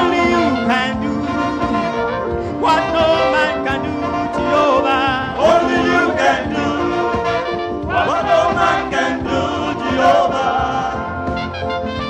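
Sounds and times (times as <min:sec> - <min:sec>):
man singing lead: 0:00.0 - 0:11.2
men's gospel choir singing: 0:00.0 - 0:12.0.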